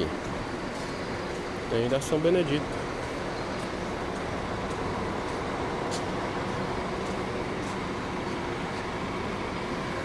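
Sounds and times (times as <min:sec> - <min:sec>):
bus engines running: 0:00.0 - 0:10.0.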